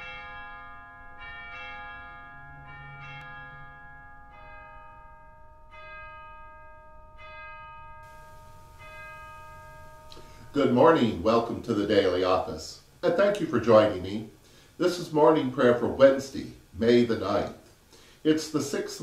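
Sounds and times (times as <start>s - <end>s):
bells chiming: 0.0s - 12.2s.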